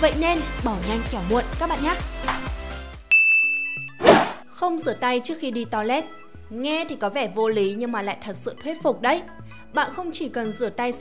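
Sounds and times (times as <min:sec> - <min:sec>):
background music: 0:00.0 - 0:11.0
high ringing ding chime: 0:03.1 - 0:04.0.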